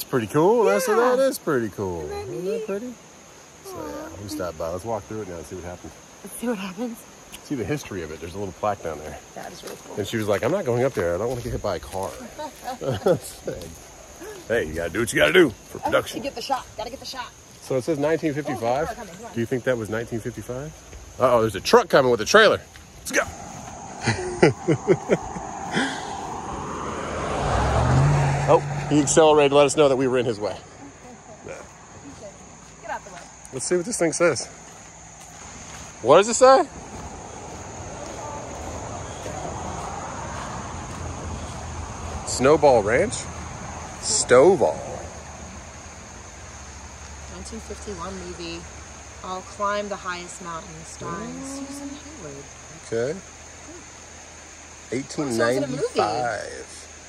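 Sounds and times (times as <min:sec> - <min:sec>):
creek running over rocks: 0:00.0 - 0:57.0
person laughing: 0:12.4 - 0:13.2, 0:24.0 - 0:26.2
vehicle passing on road: 0:20.4 - 0:57.0
truck with trailer approaching: 0:23.1 - 0:33.3, 0:34.9 - 0:49.6.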